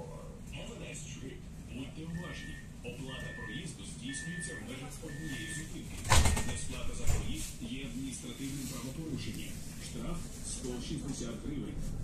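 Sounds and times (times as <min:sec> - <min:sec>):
high warning beeps: 0:02.1 - 0:06.8.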